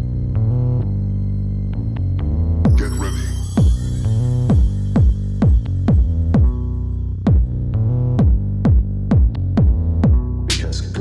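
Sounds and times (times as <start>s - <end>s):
deep bass line: 0.0s - 11.0s
electronic music: 0.0s - 11.0s
booming kick drums: 4.5s - 10.4s.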